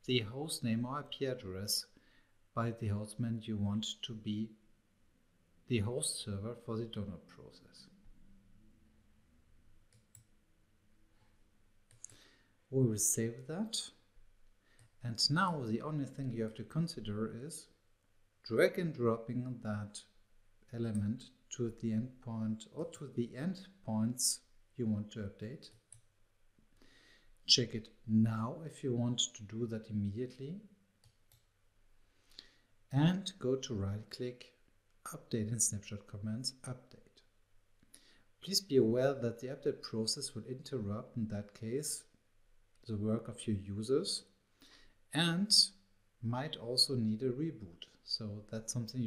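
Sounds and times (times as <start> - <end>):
faint mouse clicks: 9.9 - 10.4, 11.9 - 12.2, 25.7 - 26.1, 31.0 - 31.5
man's voice: 12.7 - 13.9, 15.0 - 17.6, 45.2 - 49.0.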